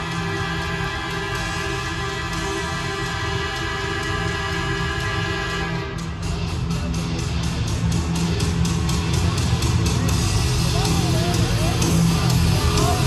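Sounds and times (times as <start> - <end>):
loud music over sound system: 0.0 - 13.0.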